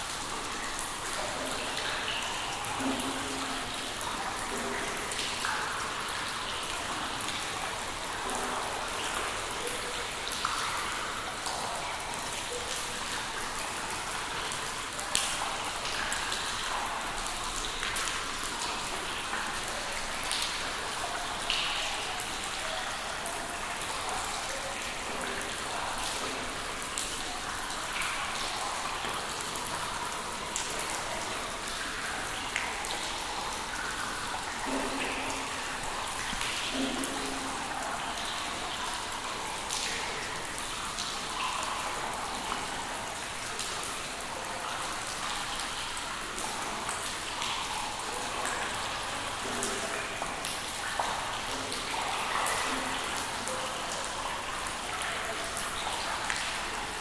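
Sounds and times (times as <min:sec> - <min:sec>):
water drips patter: 0:00.0 - 0:57.0
water drop plinks: 0:02.7 - 0:03.8.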